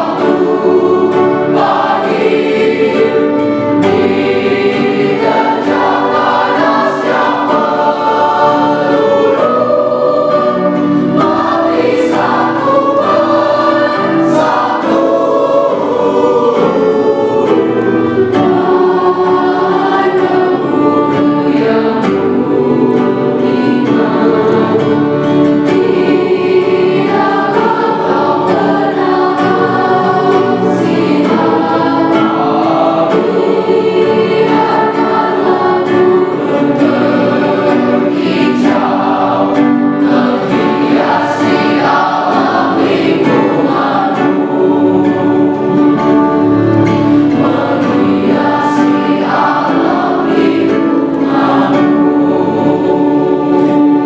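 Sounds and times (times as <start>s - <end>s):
choir singing in parts: 0.0s - 54.0s.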